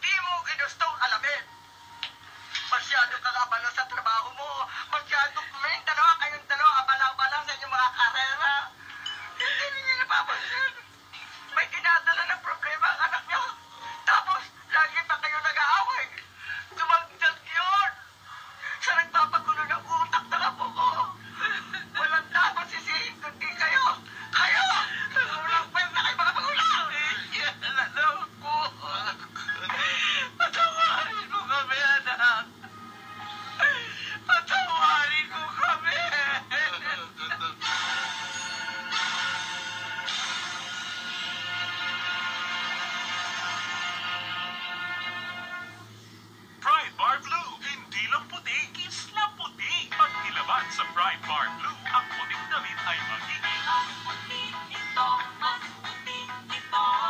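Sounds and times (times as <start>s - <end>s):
dialogue: 0.0s - 57.0s
low background music: 0.0s - 57.0s.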